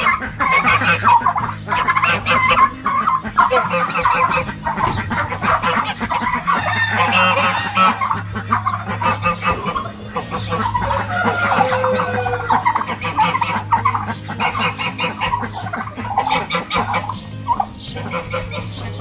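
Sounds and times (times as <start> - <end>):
turkeys clucking and calling: 0.0 - 19.0.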